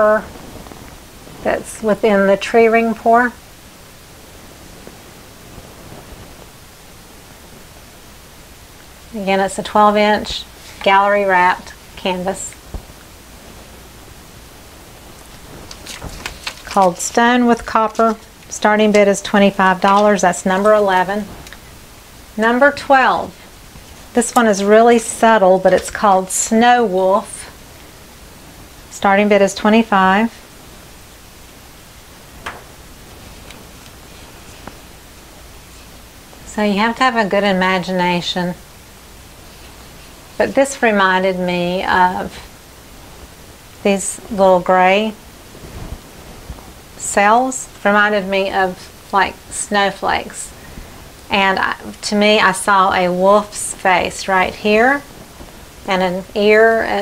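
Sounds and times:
steady background hiss: 0.0s - 57.0s.

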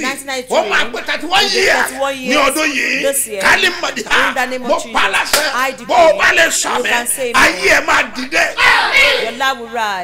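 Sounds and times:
man speaking loudly: 0.0s - 8.7s
sharp slaps or claps: 5.3s - 5.6s.

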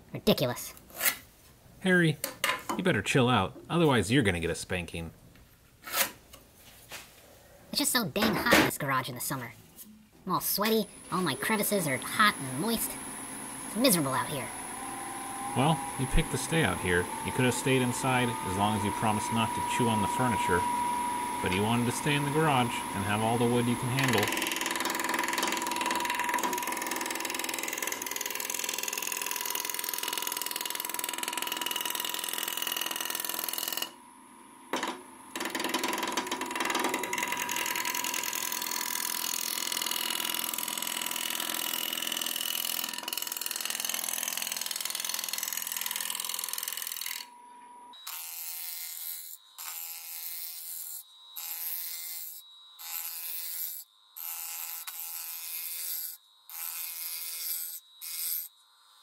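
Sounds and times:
wood lathe humming: 10.8s - 34.2s, 34.8s - 47.4s, 48.0s - 58.5s
gouge cutting wood: 12.1s - 33.9s, 35.4s - 47.2s.

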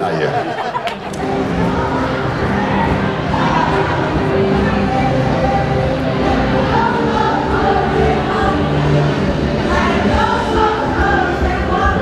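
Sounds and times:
choir singing held notes: 0.6s - 12.0s.

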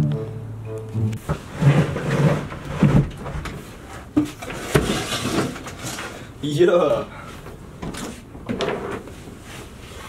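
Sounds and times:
desk scraping across floor: 1.2s - 3.4s.

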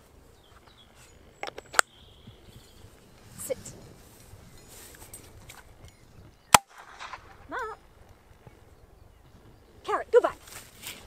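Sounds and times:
dummy launcher shot: 6.5s - 7.6s.

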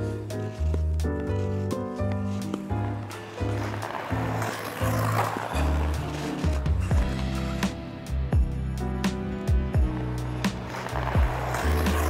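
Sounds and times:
electronic music with kick drums: 6.8s - 10.3s.

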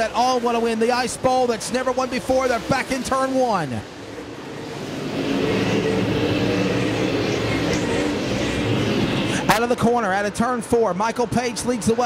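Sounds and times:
race car engines at racing speed: 0.0s - 12.0s.

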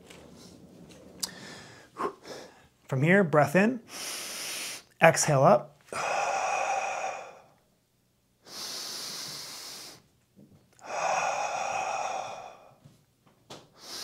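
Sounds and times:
man breathing hard: 1.2s - 2.8s, 5.9s - 7.7s, 8.4s - 10.1s, 10.8s - 13.0s, 13.8s - 14.0s.

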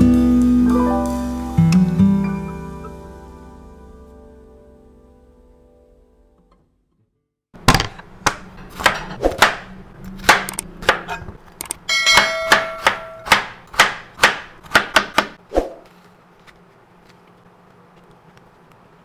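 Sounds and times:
knife chopping on plastic board: 7.6s - 11.2s, 12.2s - 15.4s.

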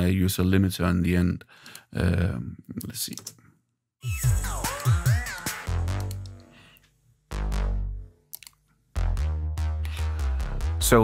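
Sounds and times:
synth bass line: 4.0s - 6.5s, 7.3s - 8.2s, 9.0s - 11.0s.

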